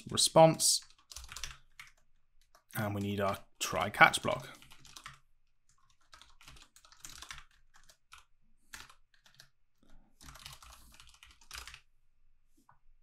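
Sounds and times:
typing on computer keyboard: 0.8s - 3.4s, 4.4s - 9.6s, 10.2s - 11.9s.

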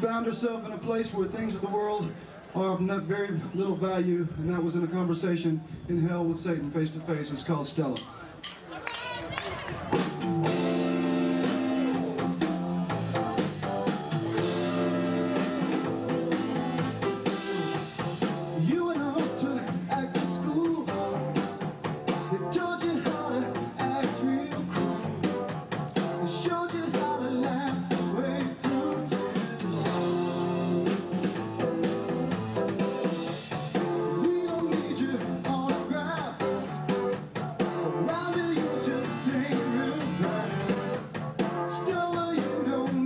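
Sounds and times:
rock band playing: 8.0s - 43.0s.

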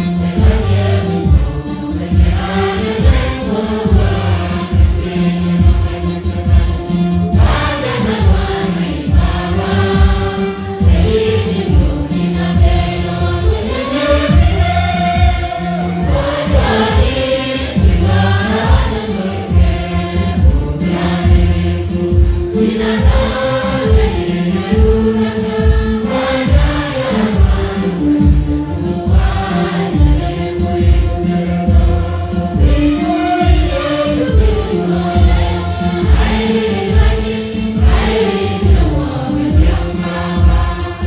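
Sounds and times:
congregation singing a hymn: 0.0s - 41.0s
low accompaniment with regular beat: 0.0s - 41.0s.

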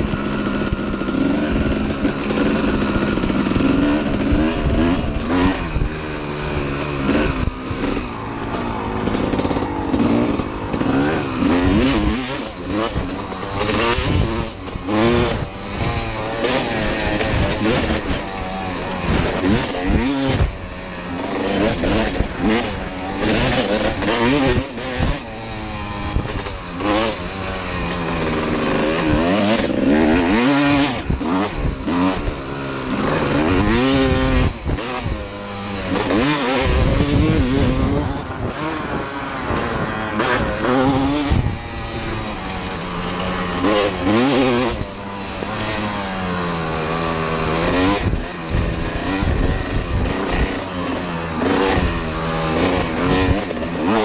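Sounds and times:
dirt bike engine revving: 0.0s - 54.0s
wind noise on microphone: 0.0s - 54.0s.

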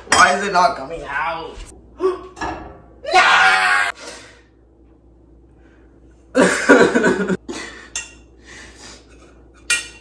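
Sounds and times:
man screaming in dismay: 3.0s - 3.9s.

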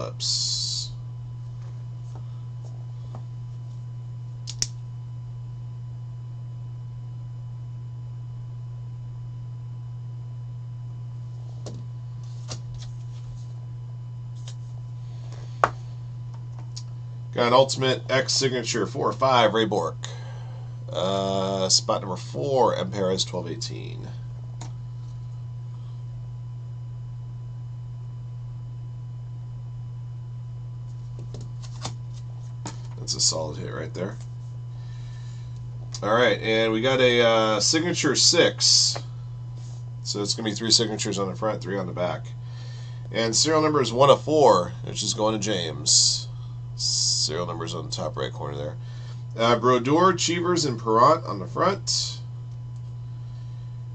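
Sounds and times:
faint thin whine: 0.0s - 53.9s
low electrical hum: 0.0s - 53.9s
sharp click: 4.4s - 4.8s.

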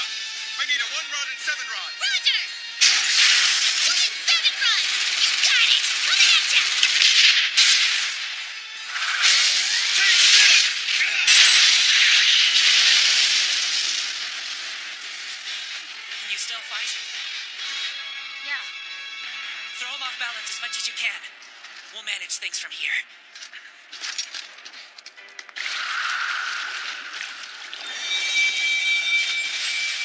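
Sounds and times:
soundtrack music: 0.0s - 22.5s.

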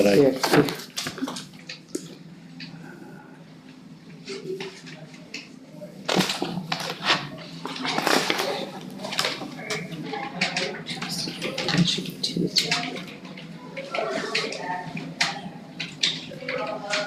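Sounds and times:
murmuring voices: 2.1s - 17.0s
paper rustling: 6.1s - 13.2s.

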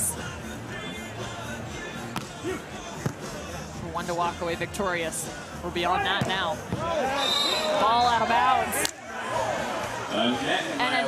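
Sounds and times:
hand smacking volleyball: 2.2s - 2.4s.

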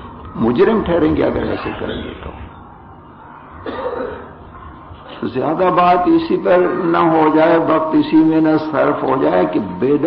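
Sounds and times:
man clearing his throat: 3.6s - 4.3s.

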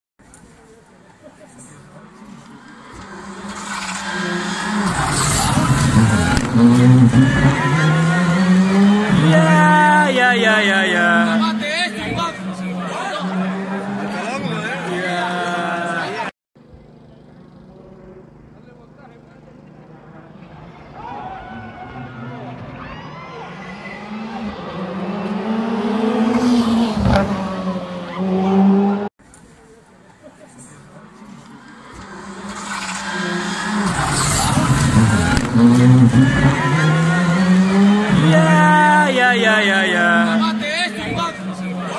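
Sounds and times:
rally car engine passing: 1.2s - 16.3s, 17.0s - 29.1s, 30.6s - 41.9s
sharp crack: 4.9s - 6.8s, 33.8s - 35.8s.

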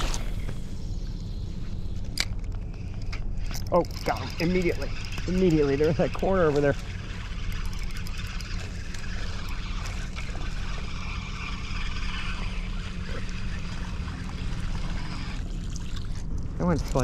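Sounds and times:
steady low hum: 0.0s - 17.0s
water trickling and splashing: 3.8s - 17.0s.

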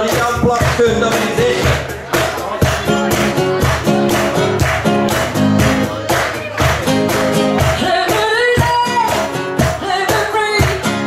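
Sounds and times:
acoustic guitars: 0.0s - 11.0s
cajon beat: 0.0s - 11.0s
woman singing lead vocal: 7.6s - 11.0s.

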